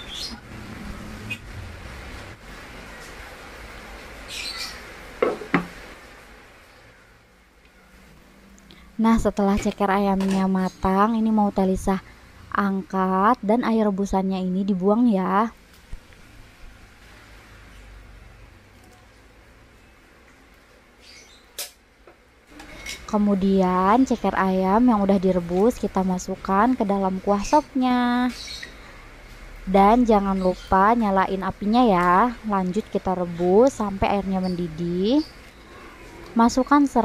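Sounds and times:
faint steady hiss: 0:00.5 - 0:30.3.

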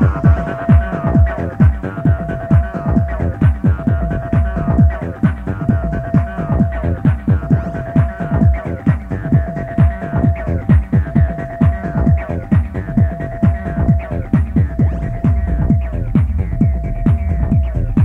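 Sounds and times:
bass drum beat: 0:00.0 - 0:18.0.

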